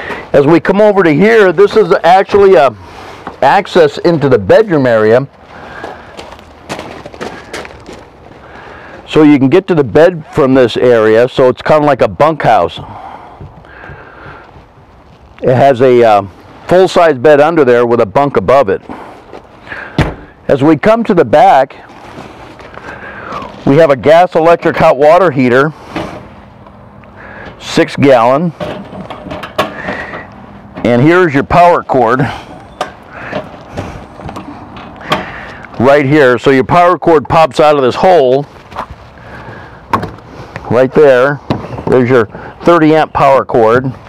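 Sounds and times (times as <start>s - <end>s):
rustling: 21.8s - 23.7s.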